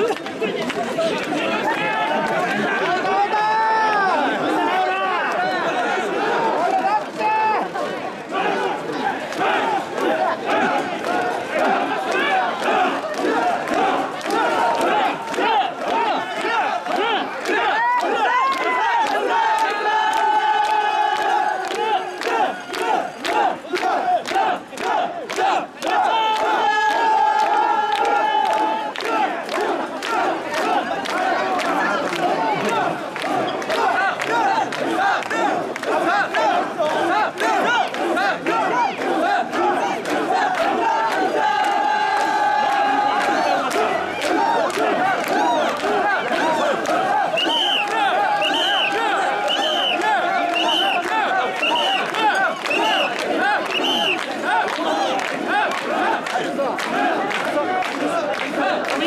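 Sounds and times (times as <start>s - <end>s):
crowd shouting rhythmic calls: 0.0s - 59.0s.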